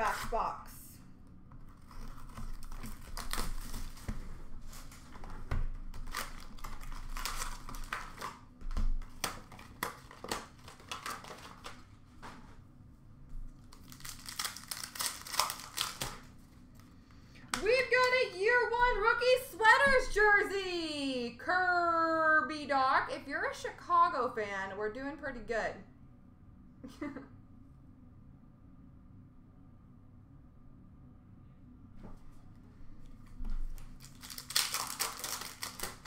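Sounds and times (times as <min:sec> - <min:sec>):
foil wrappers tearing and crinkling: 0:01.7 - 0:12.0, 0:13.6 - 0:16.4, 0:33.7 - 0:36.0
cards shuffled in hand: 0:13.7 - 0:16.9, 0:33.5 - 0:36.0.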